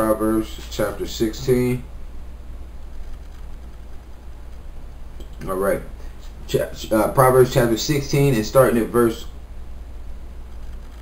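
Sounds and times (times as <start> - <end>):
faint hiss: 0.0 - 11.0
low electrical hum: 0.0 - 11.0.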